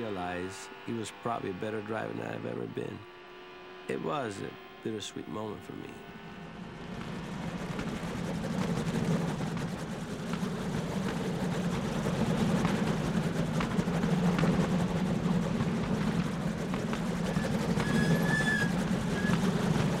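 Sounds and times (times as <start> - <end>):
high-pitched whine: 0.0 - 20.0
race car engine droning: 0.0 - 20.0.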